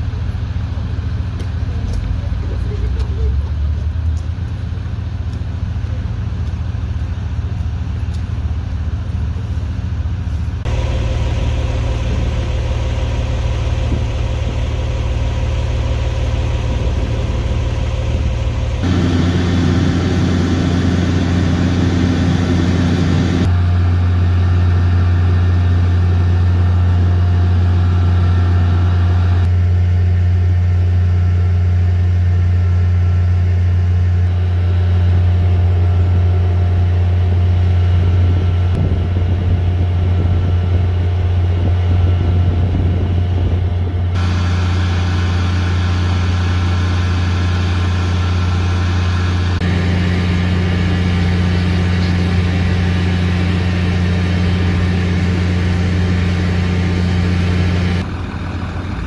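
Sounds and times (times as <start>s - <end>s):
fire engines idling: 0.0s - 59.0s.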